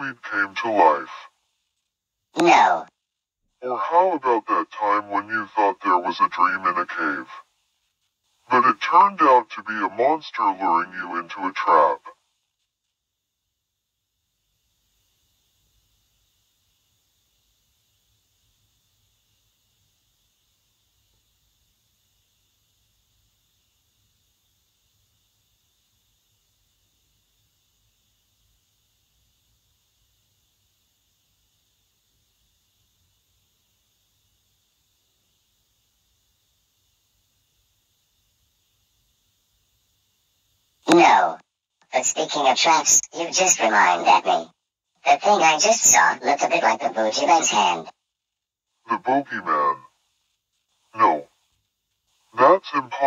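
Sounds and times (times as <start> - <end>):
faint steady hiss: 0.0 - 53.0.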